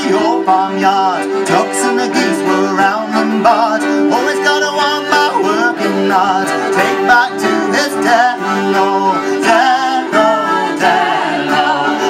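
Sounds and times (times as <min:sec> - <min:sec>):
acoustic guitar: 0:00.0 - 0:12.0
button accordion chords: 0:00.0 - 0:12.0
fiddles: 0:00.0 - 0:12.0
person singing: 0:00.0 - 0:12.0.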